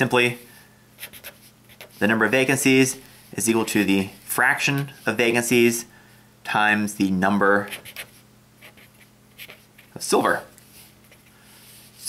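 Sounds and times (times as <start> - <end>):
marker pen writing on paper: 1.0 - 2.1, 7.7 - 9.9.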